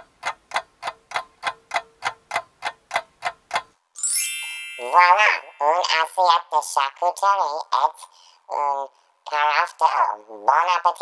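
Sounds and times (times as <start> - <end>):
clock ticking: 0.0 - 3.8.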